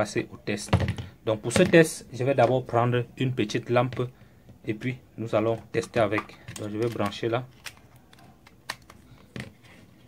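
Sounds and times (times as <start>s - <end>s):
plastic clicks: 5.8s - 9.6s.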